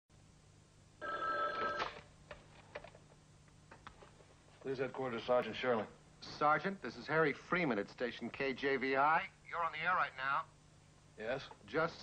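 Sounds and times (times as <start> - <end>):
telephone bell ringing: 1.0 - 2.0.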